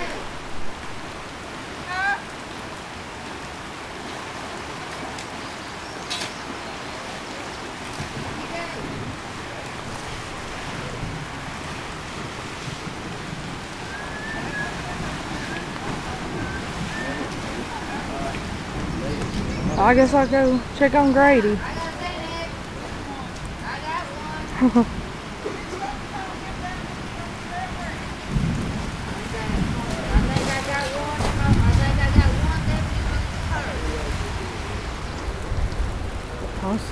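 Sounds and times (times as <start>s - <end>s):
floodwater rushing: 0.0s - 36.9s
rain: 0.0s - 36.9s.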